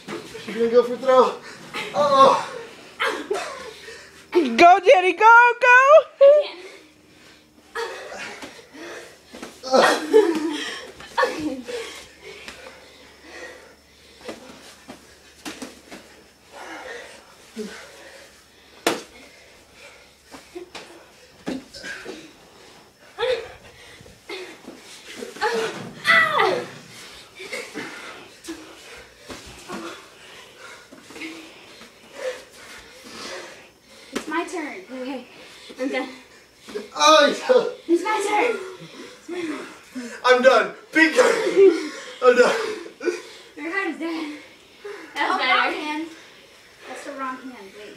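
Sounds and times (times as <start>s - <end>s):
people shouting: 1.8s - 3.2s, 25.4s - 26.9s
people laughing: 9.7s - 12.1s, 41.1s - 43.0s
scuffling slaps and bumps: 14.2s - 16.2s, 18.8s - 19.2s.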